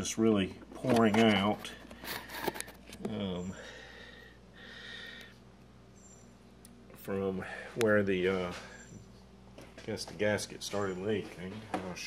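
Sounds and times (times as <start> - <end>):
low steady hum: 0.0 - 12.0
faint breath: 3.4 - 5.4, 7.4 - 7.8.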